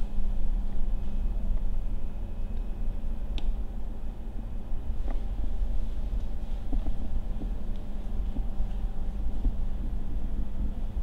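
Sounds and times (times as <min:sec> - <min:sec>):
ventilation fan humming: 0:00.0 - 0:11.0.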